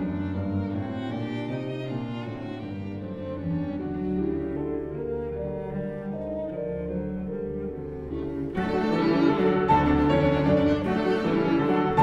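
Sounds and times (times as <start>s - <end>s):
piano: 0.0s - 12.0s
violin: 0.0s - 12.0s.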